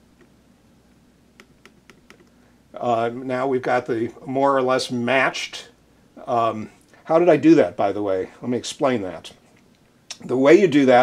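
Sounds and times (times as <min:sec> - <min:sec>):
low steady hum: 0:00.0 - 0:11.0
computer mouse clicks: 0:01.4 - 0:02.3.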